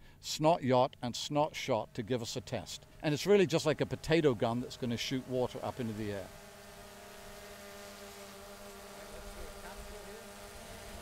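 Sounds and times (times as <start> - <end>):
drone propellers humming: 2.9 - 11.0.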